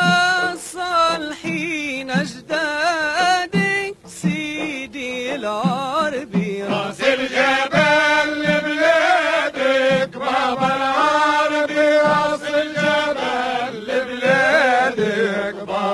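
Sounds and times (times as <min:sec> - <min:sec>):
frame drum beating: 0:00.0 - 0:15.9
men singing a chant: 0:05.3 - 0:15.9.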